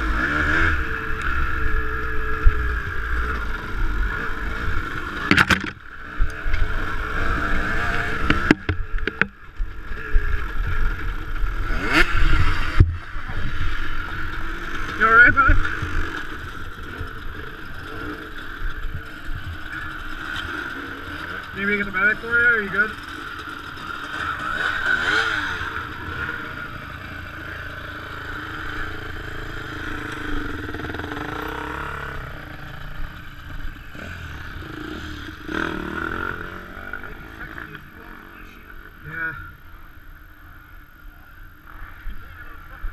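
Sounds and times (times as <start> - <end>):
dirt bike engine revving: 0.0 - 39.9
dirt bike engines running: 0.0 - 42.9.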